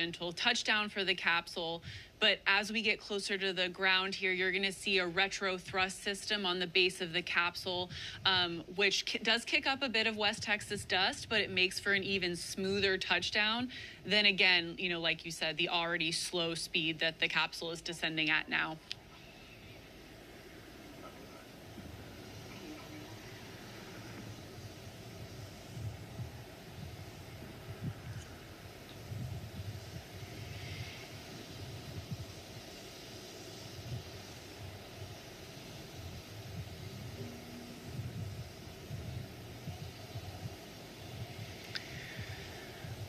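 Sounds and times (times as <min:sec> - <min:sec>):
steady hiss: 0:00.0 - 0:43.0
low uneven rumble: 0:17.8 - 0:43.0.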